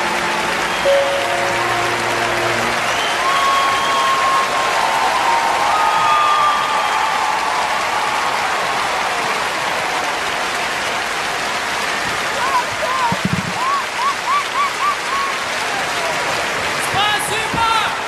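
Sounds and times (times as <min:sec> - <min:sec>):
audience applauding: 0:00.0 - 0:18.0
drawn-out cheers: 0:00.0 - 0:18.0.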